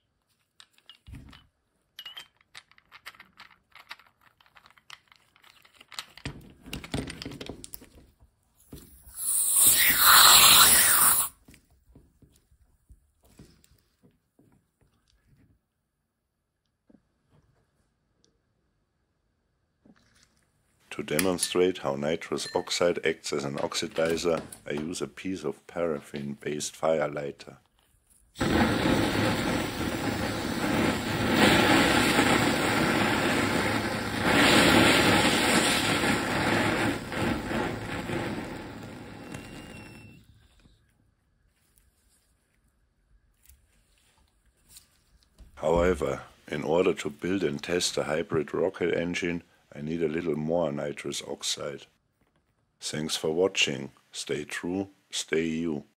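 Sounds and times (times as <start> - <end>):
gas hissing from a charger: 9.1 - 11.4, 28.4 - 40.2.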